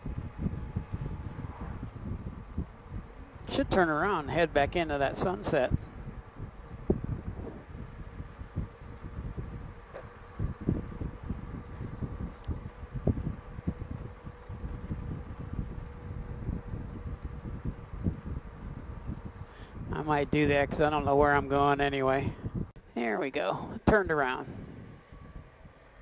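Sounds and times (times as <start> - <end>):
wind buffeting microphone: 0.0 - 22.8, 23.6 - 26.0
faint engine hum: 0.0 - 26.0.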